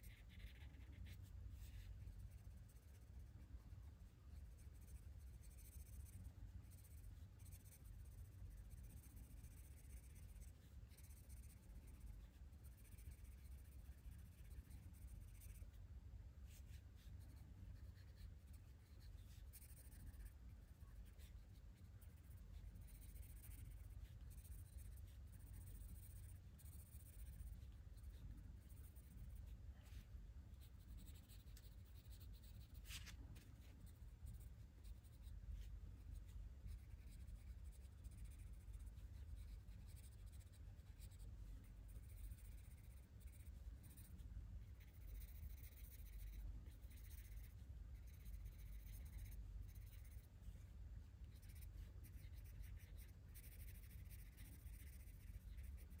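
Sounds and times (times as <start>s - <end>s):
low steady hum: 0.0s - 56.0s
pencil scratching on paper: 0.0s - 56.0s.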